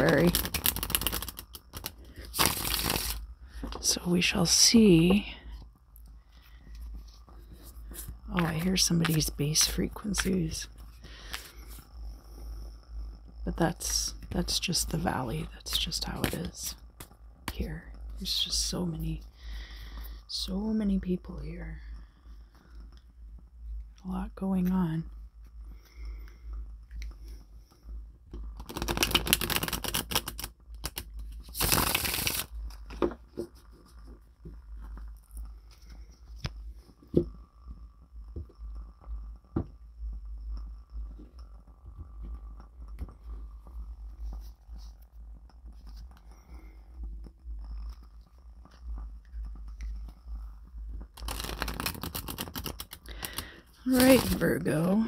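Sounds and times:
cards being shuffled: 0.0 - 4.0, 6.9 - 11.8, 28.5 - 34.2, 51.1 - 54.7
low hum: 0.0 - 28.8, 30.5 - 55.0.

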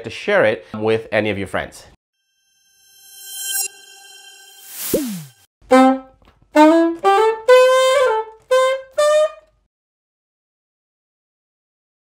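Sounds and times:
bright electronic tone: 2.3 - 5.5.

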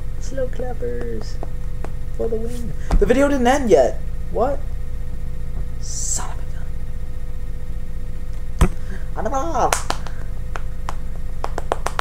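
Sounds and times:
low hum: 0.0 - 12.0
hands clapping: 9.6 - 12.0.

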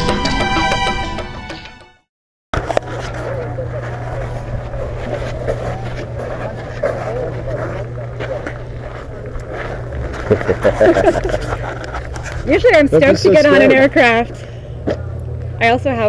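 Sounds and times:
indistinct voices: 2.6 - 16.0
low engine hum: 2.6 - 16.0.

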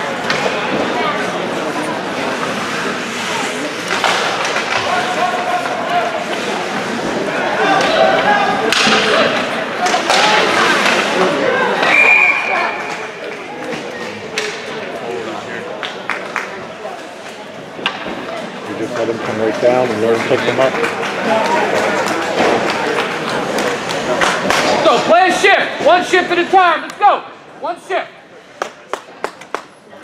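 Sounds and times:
hockey sticks and puck knocks: 3.8 - 7.2, 8.7 - 11.2, 12.8 - 14.7, 17.8 - 18.4, 20.4 - 25.0
referee whistle blast: 11.9 - 12.7.

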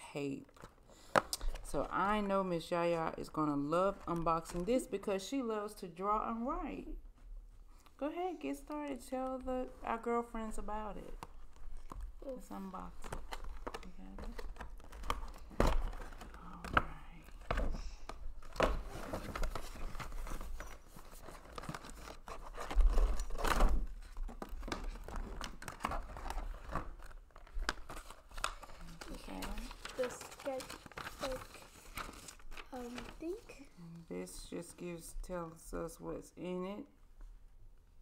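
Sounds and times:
packaging crinkling and tearing: 11.2 - 16.7, 17.5 - 33.7.

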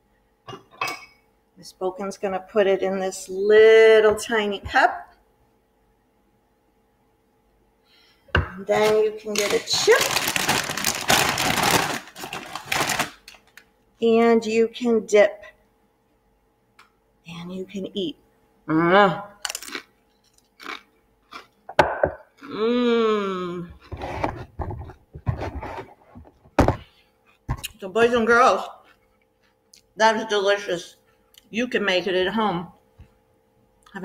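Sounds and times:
plastic bag crinkling: 8.7 - 13.7, 19.4 - 20.7
person chewing chips: 9.2 - 13.6, 19.4 - 22.9.

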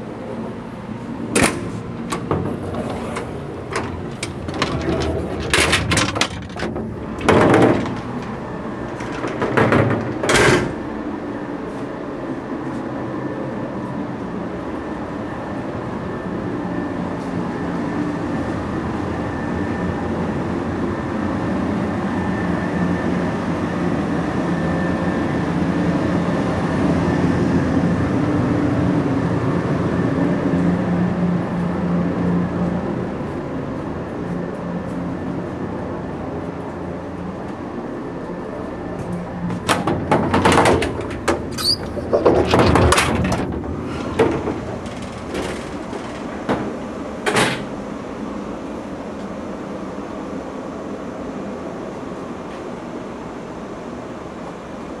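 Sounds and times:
train car hum and rumble: 0.0 - 55.0
sharp clattering: 3.7 - 10.8.

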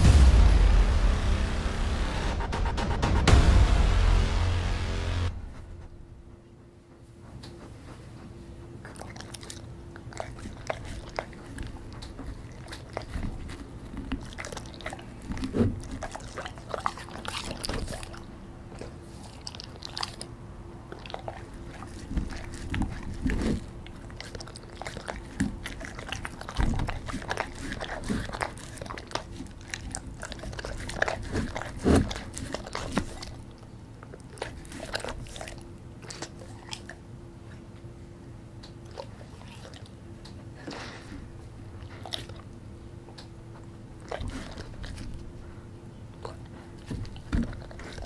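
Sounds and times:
dog licking and chewing: 7.2 - 37.7, 38.7 - 48.0.

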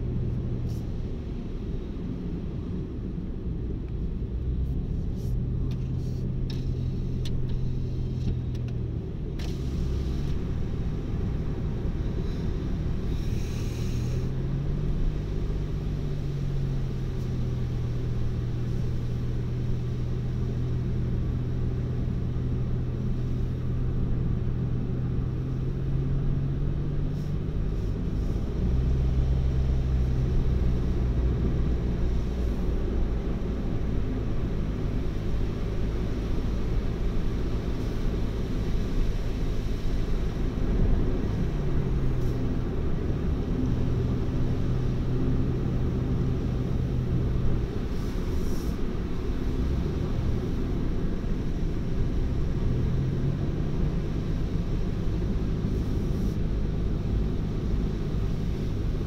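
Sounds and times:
car engine and tyre drone: 0.0 - 59.0.

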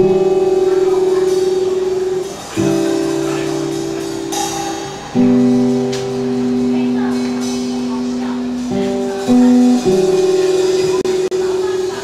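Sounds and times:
acoustic guitar chords strummed: 0.0 - 12.0
light drums: 0.0 - 12.0.

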